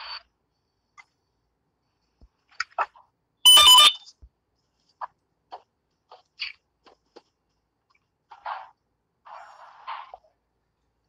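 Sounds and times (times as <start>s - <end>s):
phone electronic alert tone: 3.5s - 4.0s.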